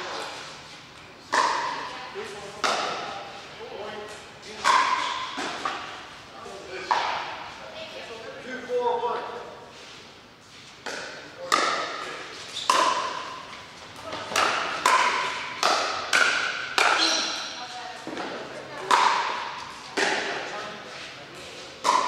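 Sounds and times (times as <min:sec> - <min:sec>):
paddles hitting plastic ball: 0:13.9 - 0:17.1.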